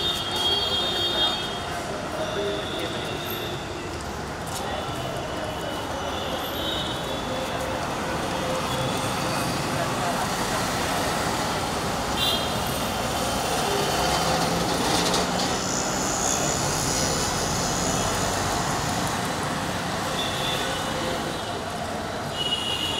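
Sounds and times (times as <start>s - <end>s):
murmur of people talking: 0.0s - 22.9s
street traffic: 0.0s - 22.9s.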